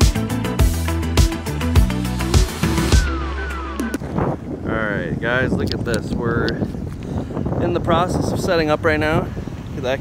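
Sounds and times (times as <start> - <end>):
background music with gliding tones: 0.0 - 4.2.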